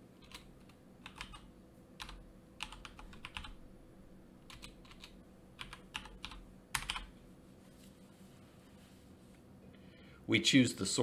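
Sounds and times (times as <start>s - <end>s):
computer keyboard typing: 0.2s - 3.6s, 4.4s - 7.2s.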